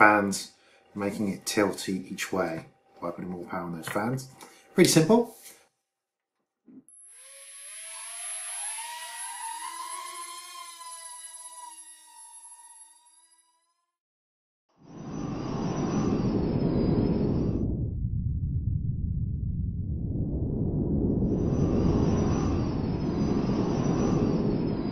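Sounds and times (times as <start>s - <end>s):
toy drone rotors whining: 6.8s - 14.0s, 22.0s - 24.9s.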